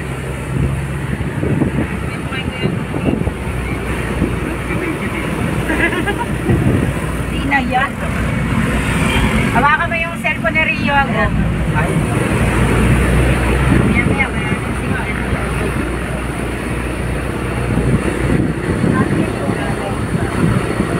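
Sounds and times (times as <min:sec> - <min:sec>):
passengers talking: 0:00.0 - 0:20.9
vehicle engine and road noise: 0:00.0 - 0:20.9.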